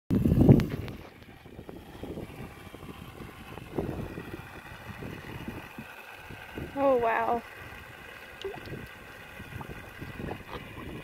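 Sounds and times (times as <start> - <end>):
wind rumble on microphone: 0.1 - 11.0
horse gulping and slurping water: 2.4 - 11.0.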